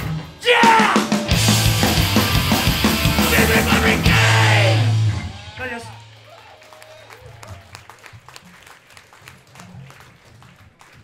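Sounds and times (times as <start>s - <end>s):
sparse applause: 3.0s - 11.0s.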